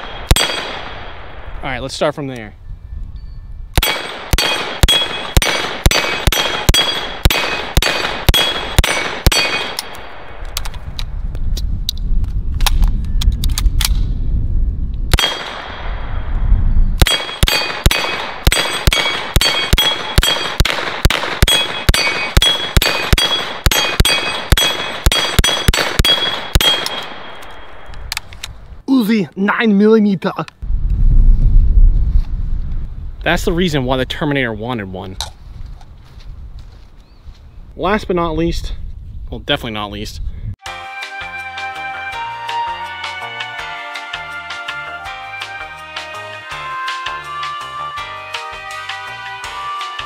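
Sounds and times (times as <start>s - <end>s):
submachine gun firing: 0.0s - 1.2s, 3.8s - 9.9s, 17.0s - 27.4s
steel plates ringing when hit: 17.1s - 20.5s, 21.5s - 27.0s.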